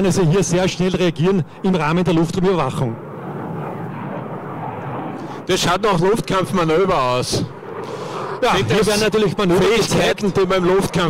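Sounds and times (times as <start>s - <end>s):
jet engines rushing: 0.0s - 11.0s.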